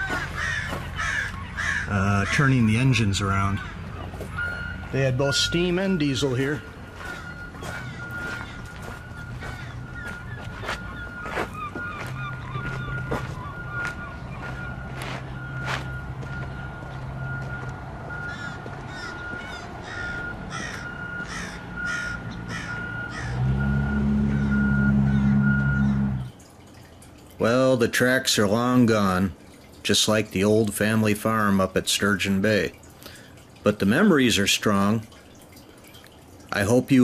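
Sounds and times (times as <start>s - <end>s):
low engine hum: 0.0s - 26.9s
birds calling: 0.0s - 27.2s.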